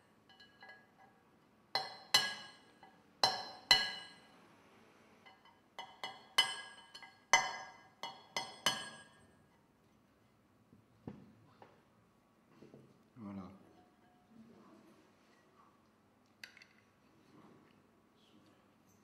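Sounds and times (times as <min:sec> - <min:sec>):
hammer tapping metal chisel: 0:00.3 - 0:01.1, 0:01.8 - 0:04.3, 0:05.3 - 0:09.3.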